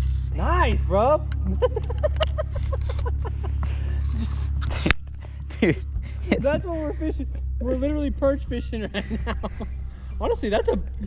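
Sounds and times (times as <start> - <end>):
steady low rumble: 0.0 - 11.0
men laughing: 1.4 - 11.0.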